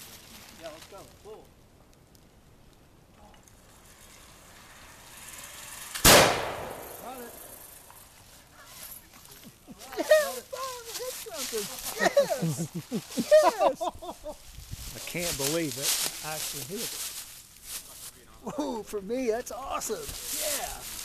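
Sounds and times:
muzzleloader gunshot: 6.0 - 7.1.

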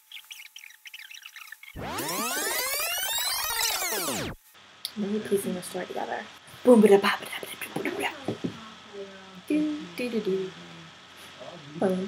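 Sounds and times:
birds chirping: 0.0 - 2.9
swooping sound effect: 1.8 - 4.4.

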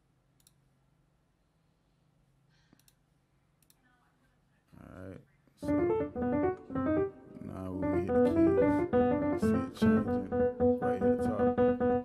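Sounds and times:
computer mouse clicks: 0.4 - 0.6, 2.8 - 3.0, 3.6 - 3.8.

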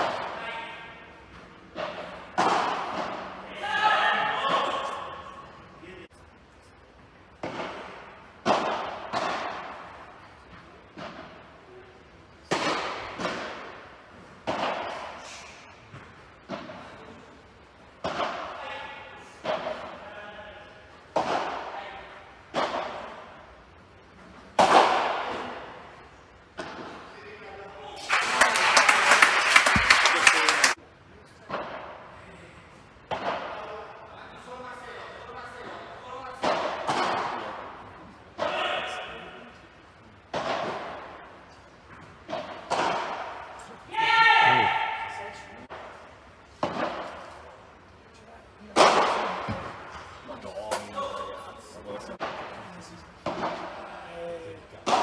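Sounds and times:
spectators applauding: 28.0 - 30.8.

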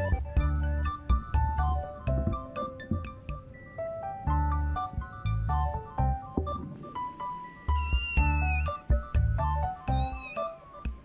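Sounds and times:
background music: 0.0 - 11.0
kittens mewing: 9.9 - 10.6.

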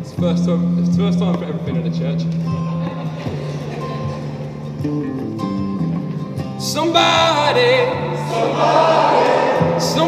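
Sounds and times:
guitars playing in a church: 0.0 - 10.0.

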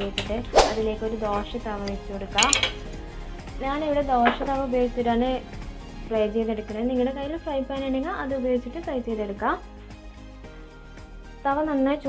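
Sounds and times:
metal pan clattering on grate: 2.3 - 2.8.

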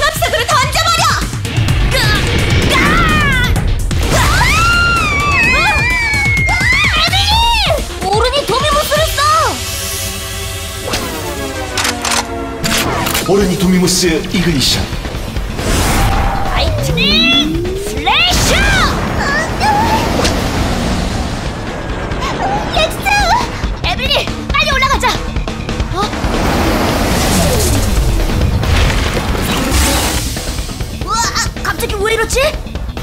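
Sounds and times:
driving background music: 0.0 - 33.0
warbling electronic sounds: 15.7 - 19.6.

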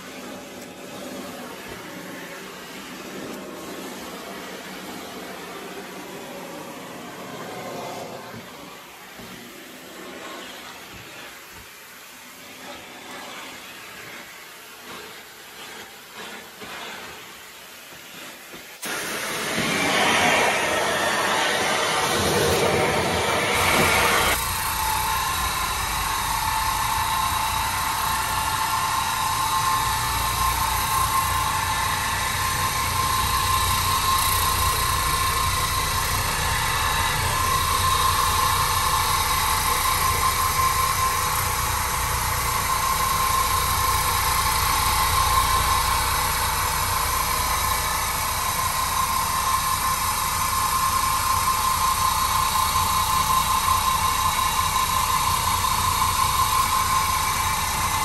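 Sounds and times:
floor machine motor hum: 0.0 - 58.0
brush scrubbing wet tile: 12.4 - 18.7
loud rushing noise: 18.8 - 27.0.

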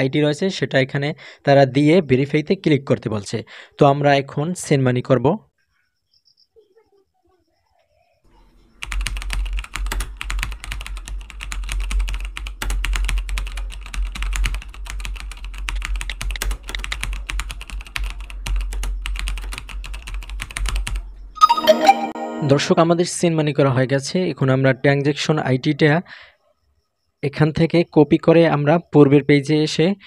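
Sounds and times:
keyboard typing clicks: 8.8 - 22.1.

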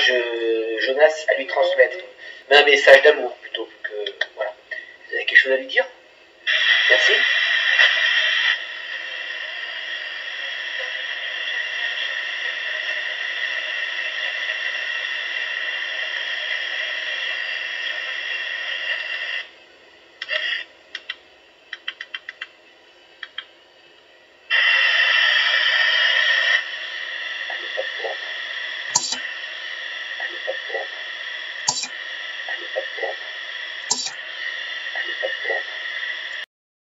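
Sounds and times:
static hiss: 0.0 - 36.5
scattered clicks: 20.2 - 22.5, 23.2 - 23.5, 29.0 - 29.3, 31.7 - 32.6, 33.9 - 34.2.

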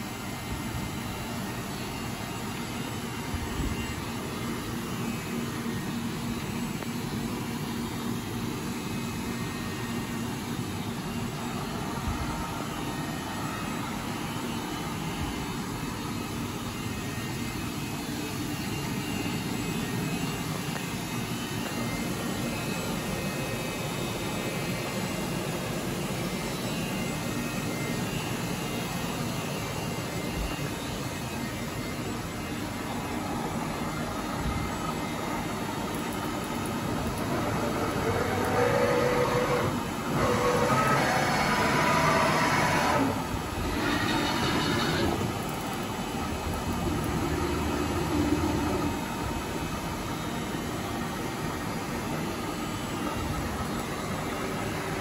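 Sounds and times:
faint steady tones: 0.0 - 40.7
milling machine running: 0.0 - 55.0.

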